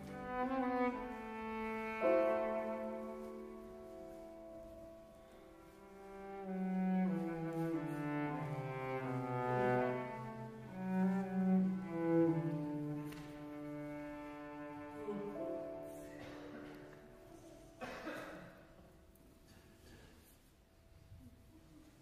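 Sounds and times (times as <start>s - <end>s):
cello bowed notes: 0.0s - 17.8s.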